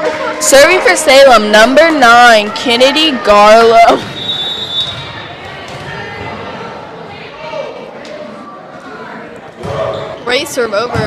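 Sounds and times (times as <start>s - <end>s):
spectators chattering and calling out: 0.0s - 11.0s.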